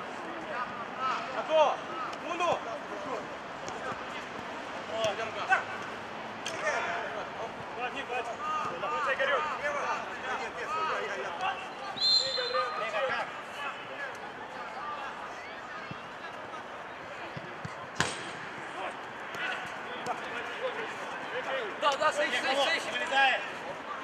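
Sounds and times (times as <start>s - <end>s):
players shouting: 4.8s - 24.0s
ball being kicked: 17.4s - 18.5s.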